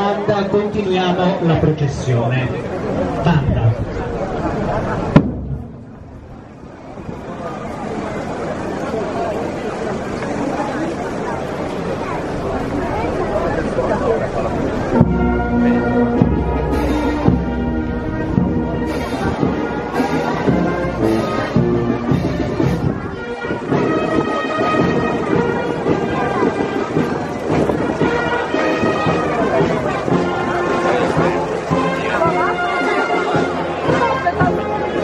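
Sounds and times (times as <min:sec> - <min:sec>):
brass band playing: 0:00.0 - 0:08.0, 0:12.2 - 0:35.0
crowd voices: 0:00.0 - 0:35.0.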